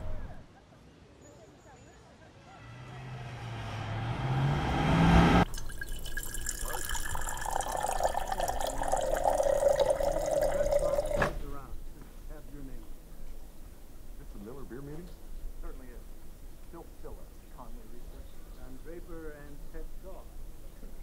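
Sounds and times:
water streaming into glass jar: 5.4 - 11.2.

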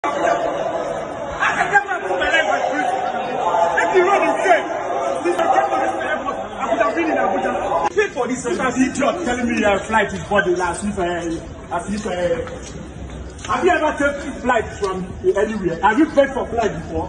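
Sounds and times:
people arguing: 0.0 - 9.6.

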